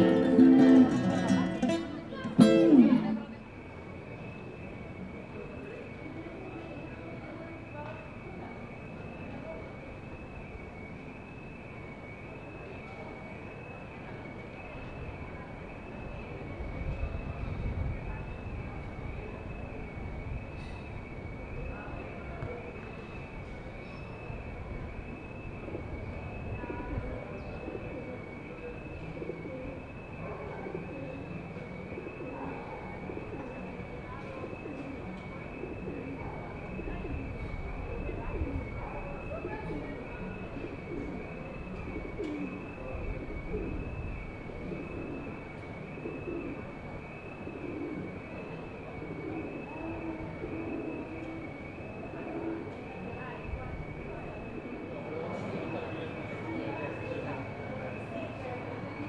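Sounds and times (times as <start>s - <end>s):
steady wavering high tone: 0.0s - 17.0s
street background hum: 0.0s - 59.0s
pigeons cooing: 26.6s - 53.2s.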